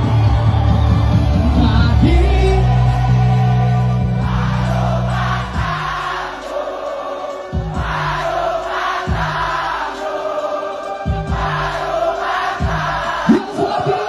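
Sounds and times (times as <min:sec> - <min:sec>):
crowd singing along: 0:00.0 - 0:14.0.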